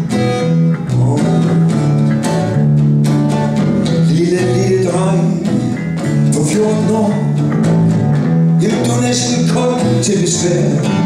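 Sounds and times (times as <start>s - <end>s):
bass guitar low notes: 0.0s - 11.0s
strummed acoustic guitar: 0.0s - 11.0s.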